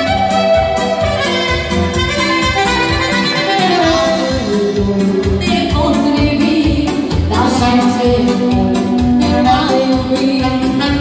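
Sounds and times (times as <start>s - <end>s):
saxophone melody: 0.0s - 6.0s
electronic keyboard backing: 0.0s - 11.0s.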